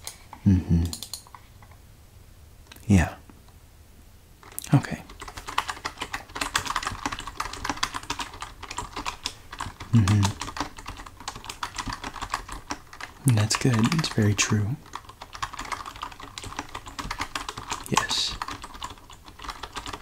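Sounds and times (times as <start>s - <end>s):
soft voice: 0.4s - 1.0s, 9.9s - 10.4s, 17.9s - 18.4s
typing on computer keyboard: 0.8s - 1.4s, 4.4s - 20.0s.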